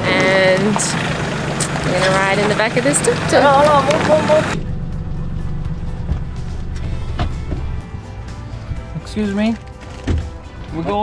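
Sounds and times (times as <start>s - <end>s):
truck engine rumble: 0.0s - 10.8s
background music: 2.2s - 11.0s.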